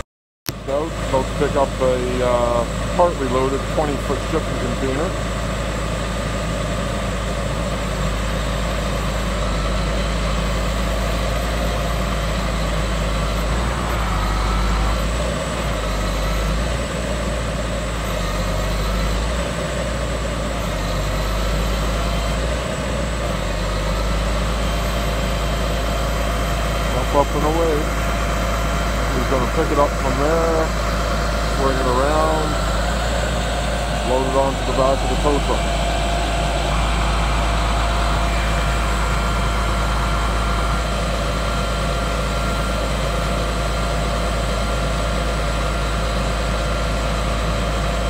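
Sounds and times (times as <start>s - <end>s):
hydraulic crane droning under load: 0.5s - 48.0s.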